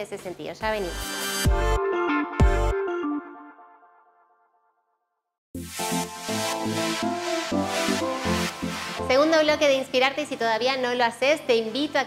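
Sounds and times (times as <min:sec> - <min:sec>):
electronic music jingle: 0:00.8 - 0:04.4, 0:05.6 - 0:09.7.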